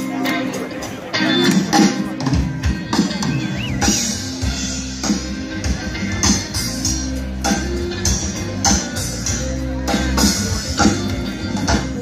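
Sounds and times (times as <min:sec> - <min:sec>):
live band playing: 0:00.0 - 0:12.0.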